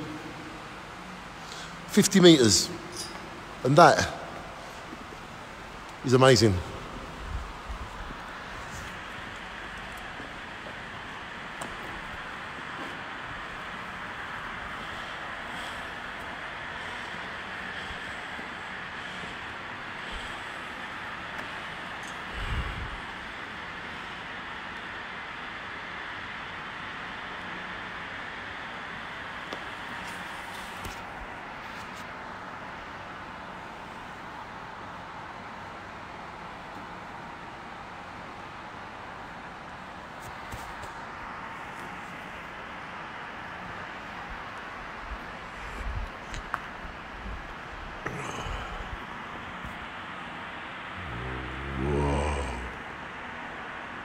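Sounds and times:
hiss-like background rush: 0.0s - 54.0s.

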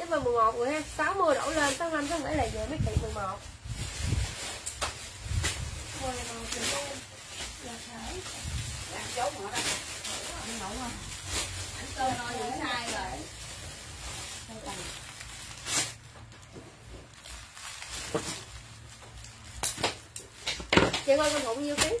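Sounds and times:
plastic bags rustling: 0.0s - 22.0s.

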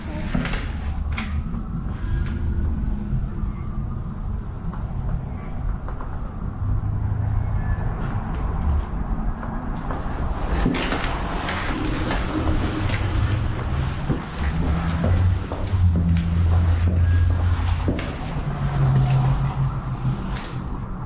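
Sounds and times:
footsteps climbing stairs: 4.7s - 6.9s, 7.8s - 19.7s
low rumble: 11.8s - 21.0s.

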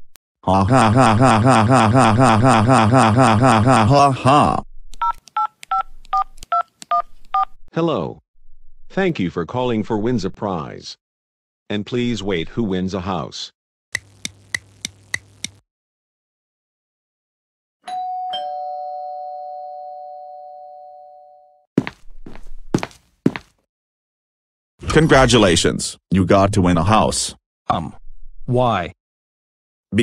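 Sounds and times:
two-tone doorbell chime: 17.9s - 21.5s.

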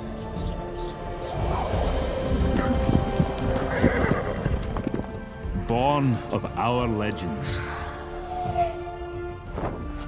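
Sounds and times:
orchestral film music: 0.0s - 10.0s
horse hoofbeats galloping: 2.5s - 5.4s.

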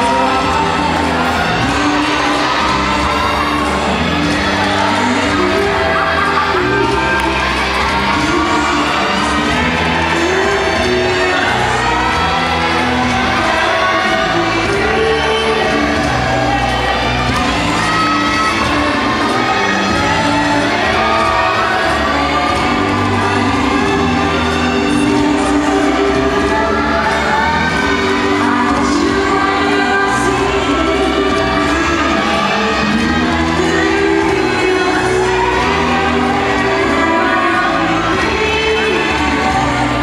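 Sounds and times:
crowd cheering and shouting: 0.0s - 40.0s
rumba music over sound system: 0.0s - 40.0s.

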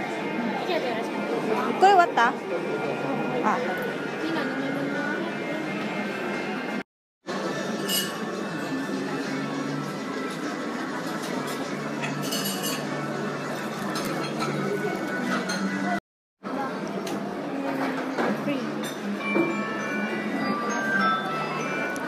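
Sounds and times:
indistinct chatter: 0.0s - 22.0s
dishes and cutlery clinking: 7.7s - 8.9s, 11.1s - 13.0s, 13.8s - 16.0s.

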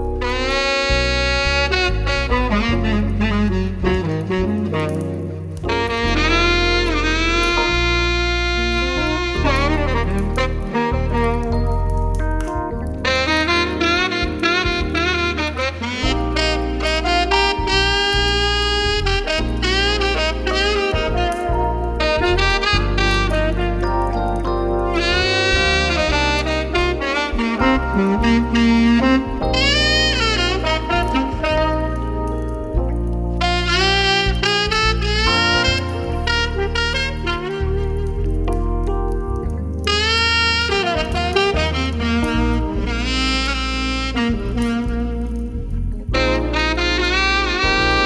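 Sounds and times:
bass line: 0.0s - 48.0s
saxophone melody: 0.0s - 48.0s.

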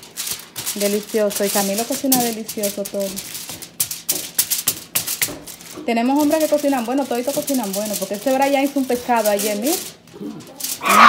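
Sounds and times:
aluminium foil crinkling: 0.0s - 11.0s
woman speaking: 0.7s - 3.3s, 5.8s - 10.8s.

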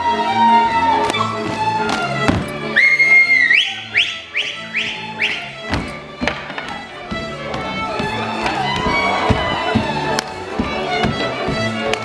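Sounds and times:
folk band music: 0.0s - 12.0s
foot stamps on wooden stage: 1.0s - 2.7s, 5.6s - 12.0s
shrill whistle: 2.8s - 5.6s.

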